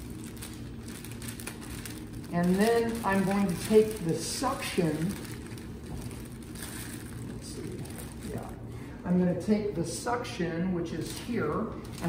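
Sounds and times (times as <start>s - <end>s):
plastic drape rustling: 0.0s - 8.6s, 11.0s - 12.0s
steady low hum: 0.0s - 12.0s.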